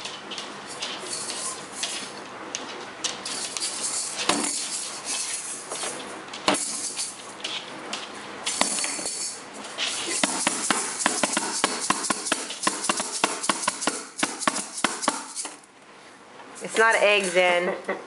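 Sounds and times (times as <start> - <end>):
shaker-like rattle: 0.0 - 2.2, 3.2 - 5.9, 6.5 - 7.2, 8.5 - 15.6
toy drum patted by hand: 10.2 - 15.5.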